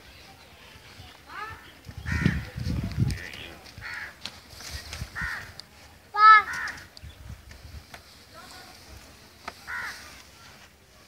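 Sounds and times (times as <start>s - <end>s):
crow cawing: 3.8s - 4.2s, 5.2s - 5.6s, 6.3s - 6.9s, 9.7s - 10.0s.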